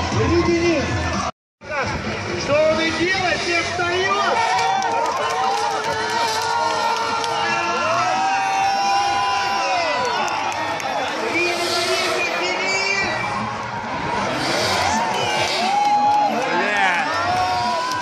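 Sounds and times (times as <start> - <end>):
crowd noise: 0.0 - 18.0
car engines revving: 10.2 - 17.7.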